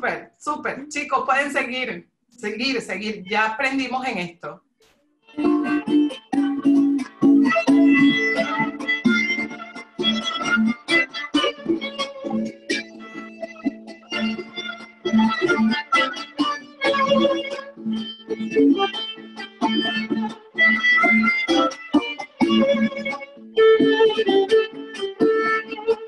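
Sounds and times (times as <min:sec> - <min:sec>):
violin melody: 0:05.3 - 0:26.0.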